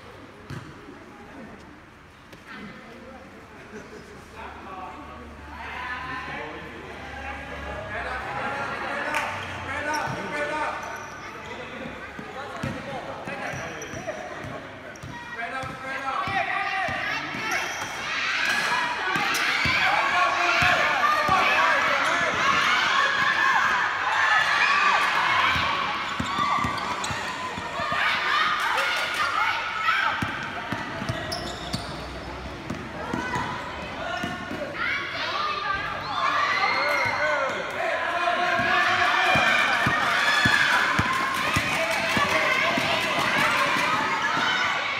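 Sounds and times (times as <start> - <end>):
people shouting and calling out: 33.0 - 44.9.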